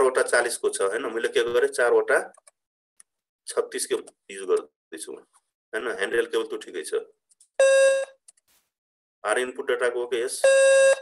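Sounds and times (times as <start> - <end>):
electronic beep tone: 7.6 - 8.1, 10.4 - 11.0.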